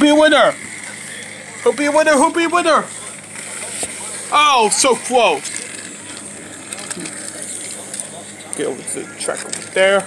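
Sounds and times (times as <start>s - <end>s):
toy train motor and gears: 0.0s - 10.0s.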